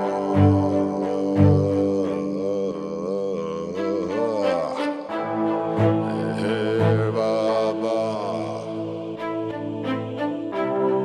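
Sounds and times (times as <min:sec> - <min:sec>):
devotional chant over drone: 0:00.0 - 0:11.0.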